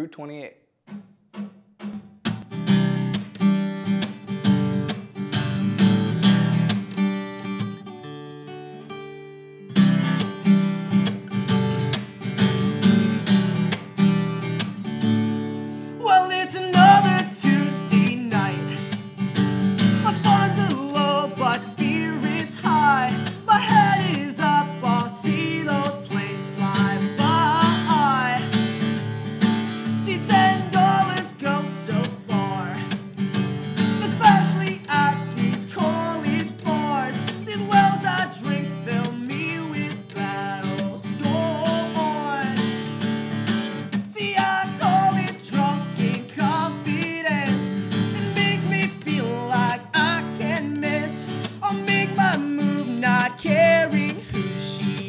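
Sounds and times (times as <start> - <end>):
acoustic guitar strumming: 0.9 - 55.0
man singing: 16.0 - 18.9, 19.8 - 28.9, 29.8 - 33.0, 33.9 - 42.8, 44.1 - 55.0.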